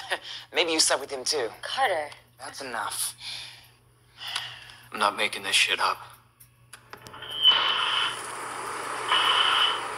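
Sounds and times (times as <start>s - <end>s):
television static hiss: 6.7s - 9.9s.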